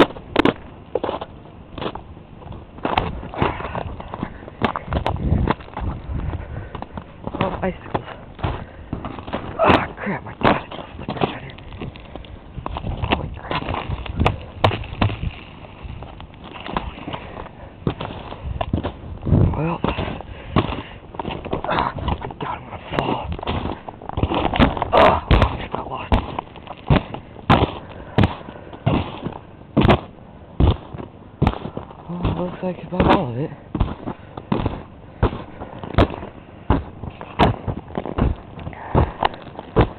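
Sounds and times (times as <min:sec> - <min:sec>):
footsteps crunching through snow: 0:00.0 - 0:39.9.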